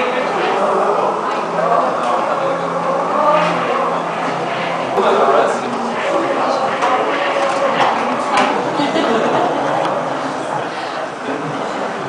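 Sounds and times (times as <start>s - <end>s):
low electronic hum: 0.0s - 12.0s.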